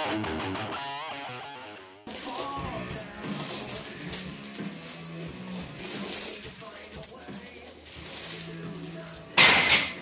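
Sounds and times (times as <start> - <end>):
guitar music: 0.0 - 2.0
steel chains clinking: 2.1 - 10.0.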